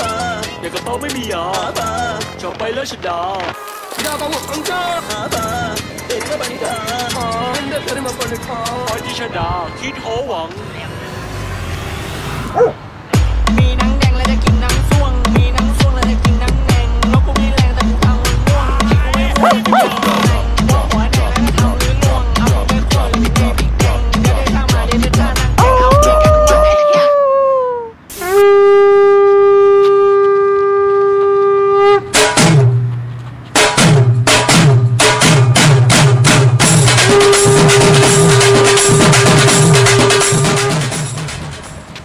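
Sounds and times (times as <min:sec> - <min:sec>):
dog howling: 0:12.6 - 0:12.8, 0:19.4 - 0:20.1, 0:25.6 - 0:27.9
short dog bark: 0:19.4 - 0:20.0
steady horn-like howl: 0:28.2 - 0:32.2.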